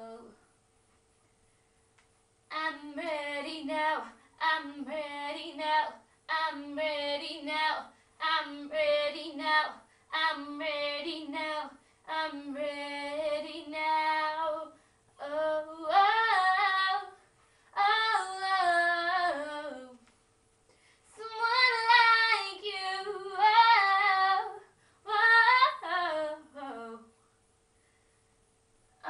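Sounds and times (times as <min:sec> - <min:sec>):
girl singing unaccompanied: 0:00.0 - 0:00.4, 0:02.5 - 0:20.0, 0:21.1 - 0:27.2
breaths: 0:07.9 - 0:08.2, 0:09.8 - 0:10.1, 0:11.8 - 0:12.1, 0:14.8 - 0:15.1, 0:17.2 - 0:17.8, 0:20.7 - 0:21.2, 0:24.6 - 0:25.1, 0:27.2 - 0:28.5.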